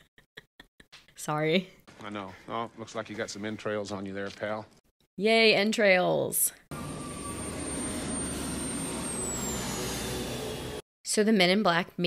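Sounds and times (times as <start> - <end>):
thin high whine: 6.7 - 10.8.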